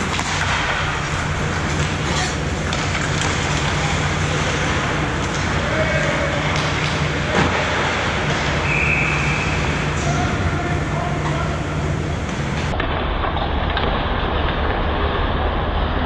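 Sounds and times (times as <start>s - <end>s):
skates on ice: 0.0s - 10.8s
distant players' voices: 0.0s - 12.8s
rink hum and rumble: 0.0s - 16.0s.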